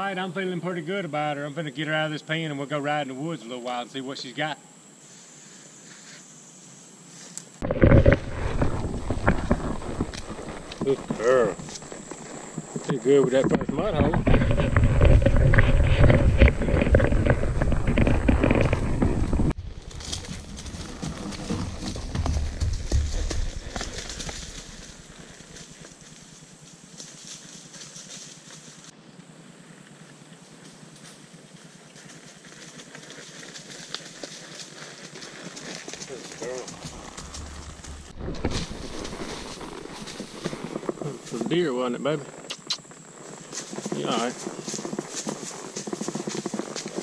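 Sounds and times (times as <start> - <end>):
hooves on a trail: 7.1 - 29.0, 29.8 - 47.0.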